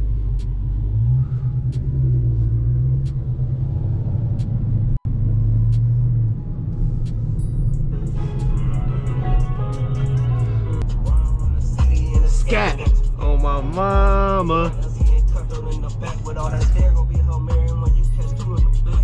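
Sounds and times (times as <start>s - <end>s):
car engine low rumble: 0.0s - 19.0s
hip-hop music: 7.0s - 19.0s.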